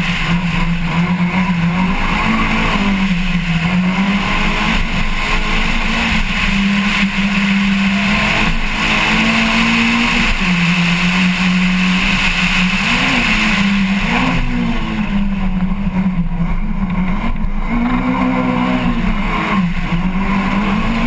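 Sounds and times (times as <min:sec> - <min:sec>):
race car engine under load: 0:00.0 - 0:21.0
road and wind noise: 0:00.0 - 0:21.0.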